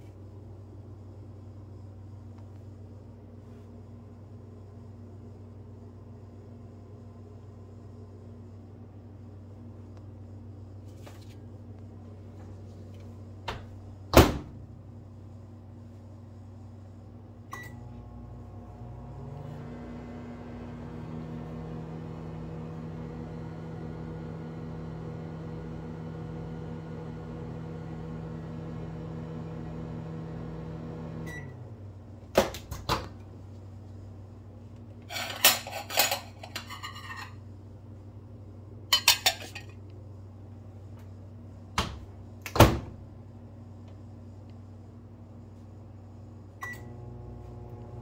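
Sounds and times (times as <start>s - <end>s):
microwave oven humming: 0.0s - 48.0s
dishes clattering: 35.1s - 37.4s, 38.9s - 39.7s.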